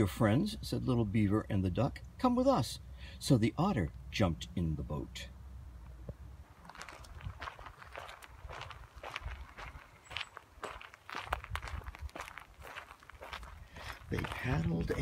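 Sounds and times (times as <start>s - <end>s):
footsteps on dry leaves: 6.6s - 15.0s.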